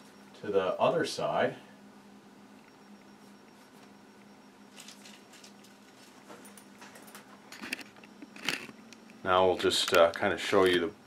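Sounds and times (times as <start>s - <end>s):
room fan humming: 0.0s - 11.0s
camera handling clicks and rustles: 7.5s - 8.8s.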